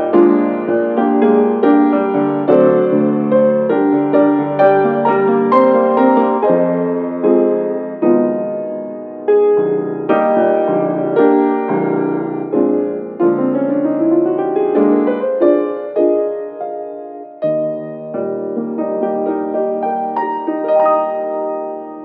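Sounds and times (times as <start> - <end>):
solo piano hymn: 0.0 - 22.0.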